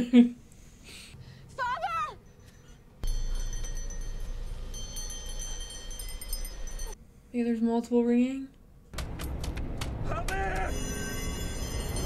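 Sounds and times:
small bells ringing: 0:02.2 - 0:07.0, 0:10.6 - 0:12.0.

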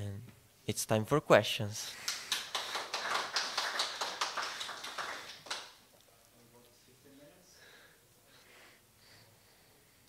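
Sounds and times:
audience applauding: 0:02.0 - 0:05.8.

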